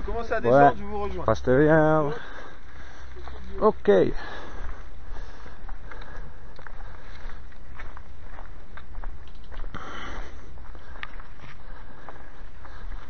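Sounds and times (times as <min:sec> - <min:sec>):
footsteps on stony dirt trail: 0:00.0 - 0:13.0
steady low rumble: 0:00.0 - 0:13.0.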